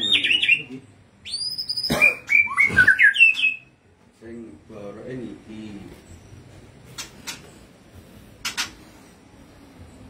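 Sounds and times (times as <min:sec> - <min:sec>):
songbird singing: 0:00.0 - 0:10.0.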